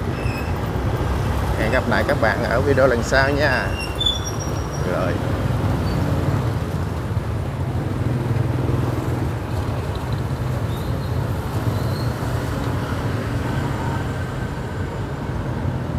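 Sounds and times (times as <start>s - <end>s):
road noise: 0.0s - 15.9s.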